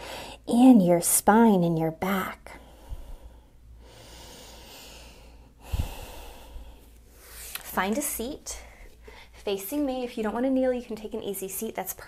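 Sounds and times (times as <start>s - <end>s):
person breathing: 0.0s - 0.4s, 2.5s - 7.6s, 8.5s - 9.4s.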